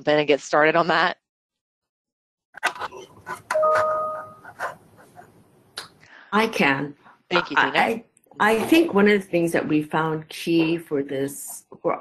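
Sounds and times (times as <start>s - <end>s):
short electronic chime: 3.6s - 4.4s.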